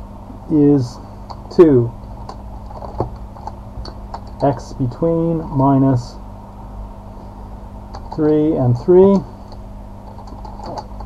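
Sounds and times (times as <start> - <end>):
keyboard typing: 1.3 - 4.6, 7.9 - 8.4, 9.1 - 11.0.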